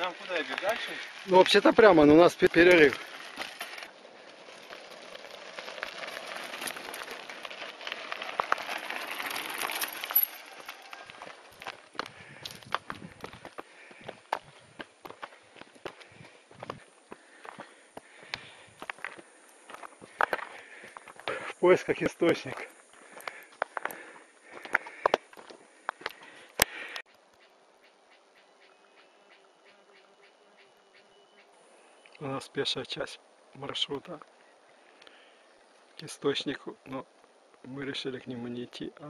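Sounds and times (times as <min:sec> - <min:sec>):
footsteps crunching on rocks: 0:00.0 - 0:01.8, 0:02.6 - 0:26.3
bike tyres rolling over gravel: 0:00.0 - 0:27.0.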